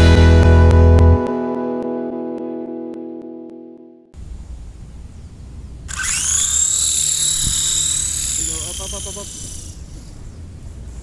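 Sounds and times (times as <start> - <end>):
toy helicopter motors whining: 5.9 - 10.1.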